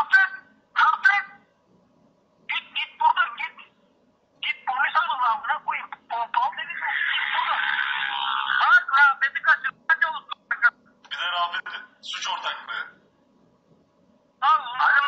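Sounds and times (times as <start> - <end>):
telephone speech: 0.0 - 1.4, 2.5 - 3.7, 4.4 - 7.6, 8.4 - 13.0, 14.4 - 15.0.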